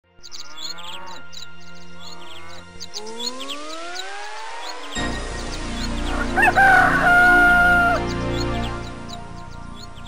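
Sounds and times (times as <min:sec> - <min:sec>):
birds chirping: 0:00.0 - 0:10.0
held low music chord: 0:00.1 - 0:10.0.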